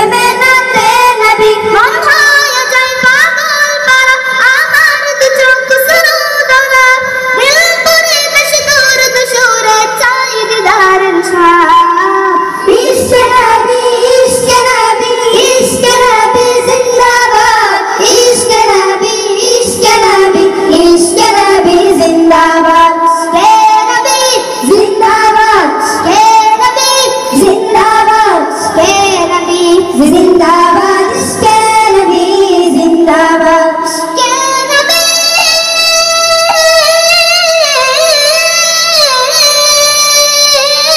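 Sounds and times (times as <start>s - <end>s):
boys singing into microphones: 0.0s - 40.9s.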